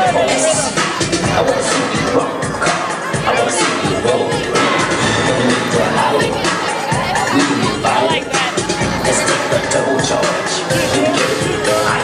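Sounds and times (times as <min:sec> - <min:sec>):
crowd shouting and cheering: 0:00.0 - 0:12.0
loud dance music: 0:00.0 - 0:12.0.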